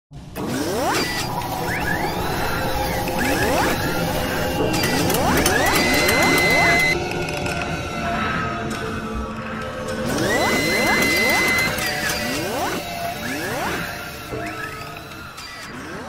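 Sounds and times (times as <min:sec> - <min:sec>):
steady synthetic background: 0:00.1 - 0:16.0
mechanical whirring and clicking: 0:00.3 - 0:07.8, 0:09.8 - 0:16.0
rising sweeps: 0:00.4 - 0:16.0.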